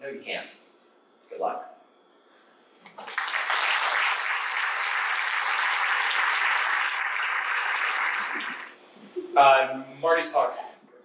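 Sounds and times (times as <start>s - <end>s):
audience applauding: 2.9s - 8.8s.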